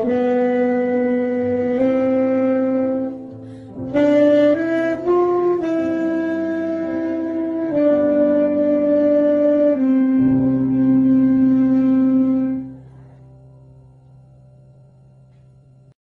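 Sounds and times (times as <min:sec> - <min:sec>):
solo wind instrument melody: 0:00.0 - 0:13.4
backing accompaniment: 0:00.0 - 0:15.8.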